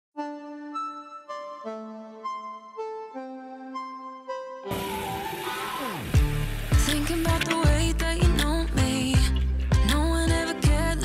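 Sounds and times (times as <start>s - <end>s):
soft reedy melody: 0.2s - 9.5s
falling sweep: 4.7s - 7.4s
pop beat with heavy bass: 6.2s - 11.0s.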